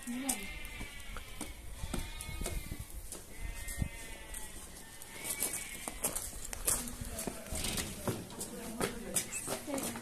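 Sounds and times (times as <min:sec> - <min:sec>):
sheep bleating: 0:00.0 - 0:06.2
footsteps on concrete steps: 0:00.0 - 0:10.0.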